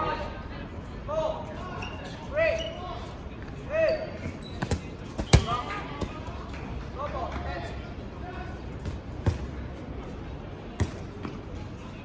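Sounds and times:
balls smacking on hard court: 10.8s - 11.4s.

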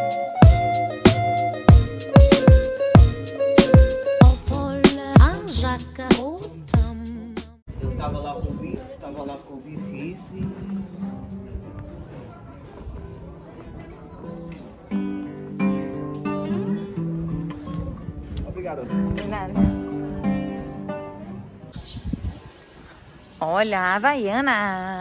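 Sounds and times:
acoustic guitar melody: 0.0s - 7.1s, 9.8s - 12.2s, 14.0s - 21.7s.

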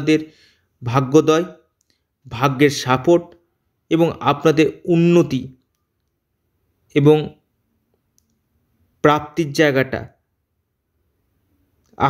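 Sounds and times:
man narrating: 0.0s - 1.6s, 2.3s - 3.3s, 3.9s - 5.6s, 6.9s - 7.4s, 9.0s - 10.1s
faint click: 7.9s - 8.4s.

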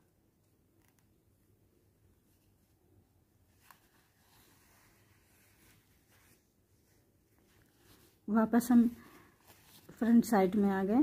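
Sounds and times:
faint rustling of thread and fabric: 0.0s - 11.0s.

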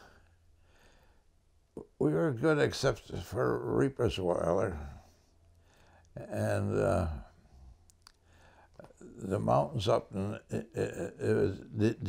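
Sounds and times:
man saying uh: 6.2s - 7.3s, 9.0s - 12.0s
faint clicks: 7.8s - 9.0s.

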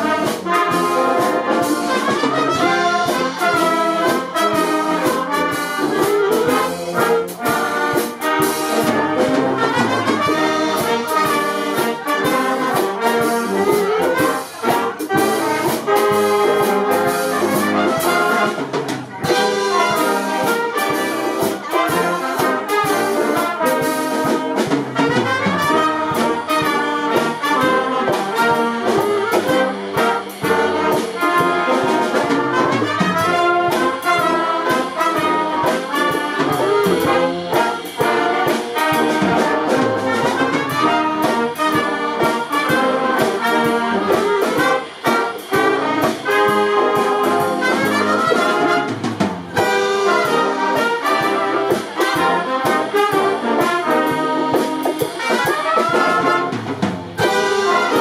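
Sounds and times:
brass band playing: 0.0s - 58.0s.

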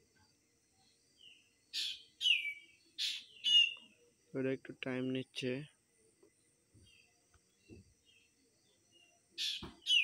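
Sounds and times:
bird calling: 1.8s - 3.9s, 9.4s - 10.0s.

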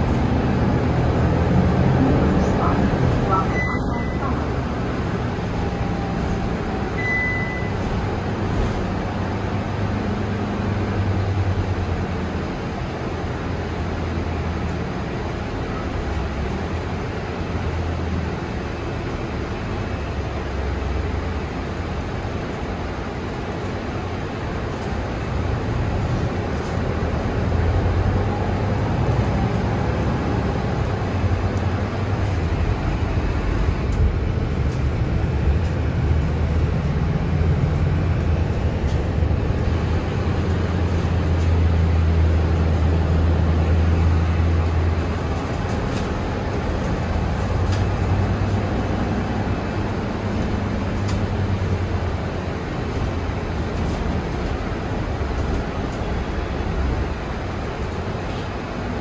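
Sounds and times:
bus engine drone: 0.0s - 59.0s
road and body noise: 0.0s - 59.0s.

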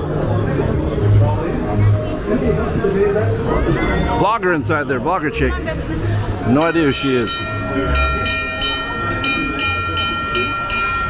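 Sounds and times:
streetcar bell ringing rapidly: 6.4s - 11.0s.

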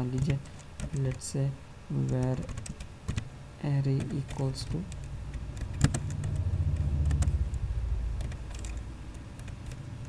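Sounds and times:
computer keyboard keystrokes: 0.0s - 1.2s, 2.0s - 3.3s, 3.9s - 7.4s, 8.2s - 9.9s
steady low hum: 0.0s - 10.0s.

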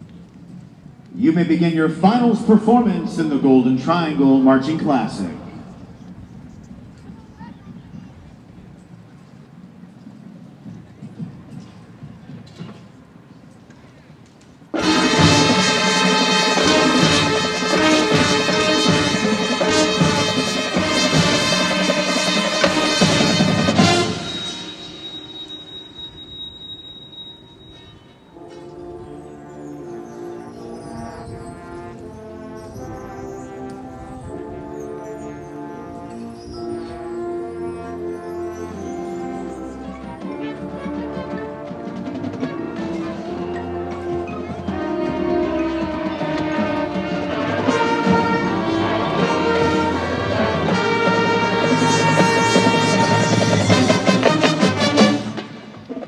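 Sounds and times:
marching band with brass and percussion: 0.0s - 56.0s
high held tone: 14.8s - 31.9s, 46.6s - 55.4s.

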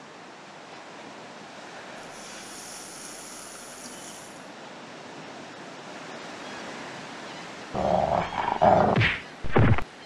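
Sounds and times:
sea surf washing: 0.8s - 9.8s.

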